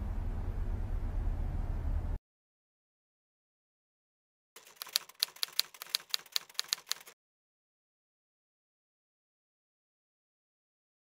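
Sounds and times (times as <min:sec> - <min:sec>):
typewriter keys clacking: 0:04.6 - 0:07.2.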